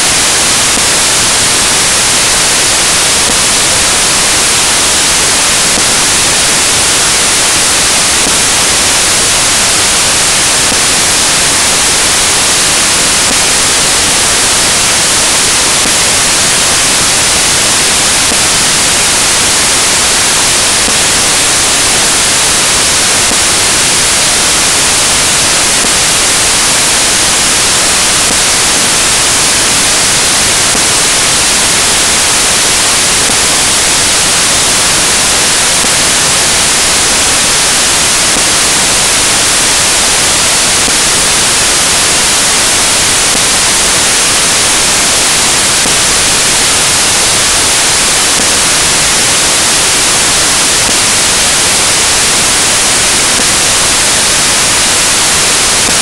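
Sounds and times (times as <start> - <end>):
static hiss: 0.0 - 56.0.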